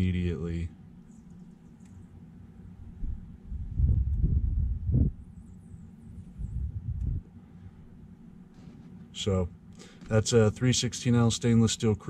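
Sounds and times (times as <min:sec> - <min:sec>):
muffled microphone rumbling: 0:03.0 - 0:05.2, 0:06.3 - 0:07.3.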